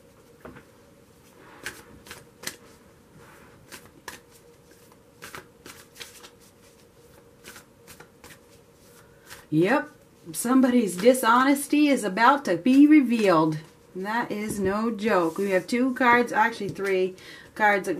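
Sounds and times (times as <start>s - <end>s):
cards shuffling: 1.6s - 2.8s, 3.6s - 9.5s.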